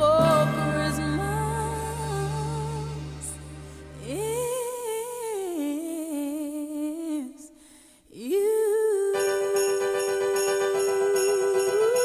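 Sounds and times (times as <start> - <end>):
woman singing long note: 0.0 - 3.4
pop backing music: 0.0 - 5.6, 9.1 - 12.0.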